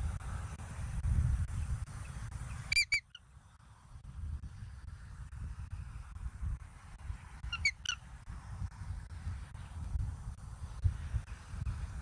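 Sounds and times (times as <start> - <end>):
eagle chirps: 2.7 - 3.2, 7.5 - 8.0.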